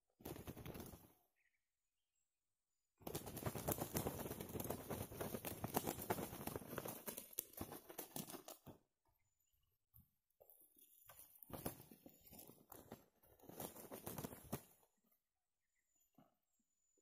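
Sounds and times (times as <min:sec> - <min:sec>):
rapid wing flapping: 0:00.1 - 0:01.2, 0:03.0 - 0:08.8, 0:11.3 - 0:14.8
roosters fighting: 0:03.1 - 0:08.8, 0:10.7 - 0:14.9.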